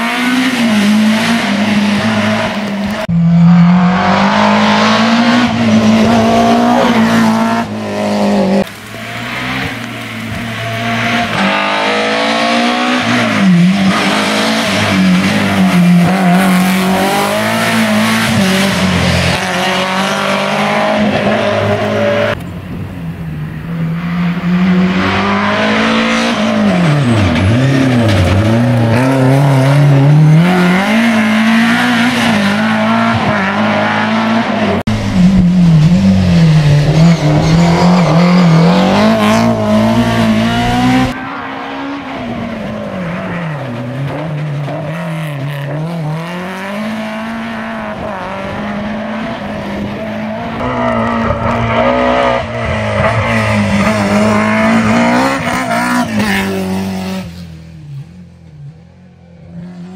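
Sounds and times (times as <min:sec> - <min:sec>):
rally car engine revving: 0:00.0 - 0:22.5, 0:23.6 - 0:58.2.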